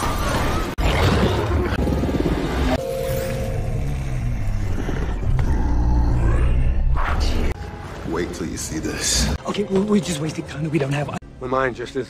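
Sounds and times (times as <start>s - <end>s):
monster growling: 3.8s - 7.6s
background music: 7.5s - 12.0s.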